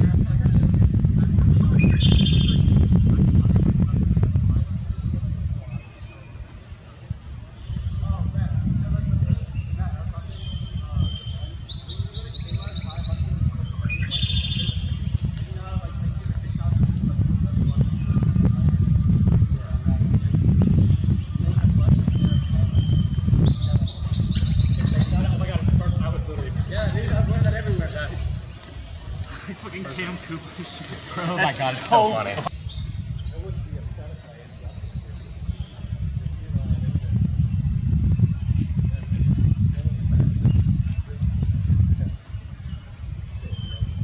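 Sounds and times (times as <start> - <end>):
low rumble with crackling: 14.8 - 32.5.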